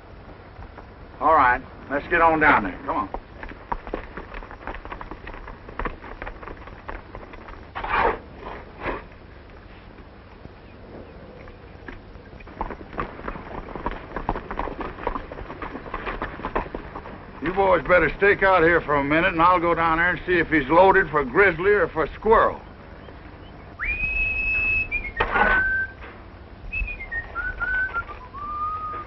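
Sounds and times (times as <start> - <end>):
horses' hooves clopping: 0.0 - 29.0.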